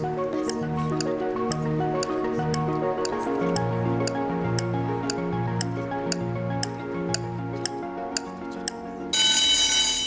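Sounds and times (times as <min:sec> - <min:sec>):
quiz show countdown music: 0:00.0 - 0:08.3.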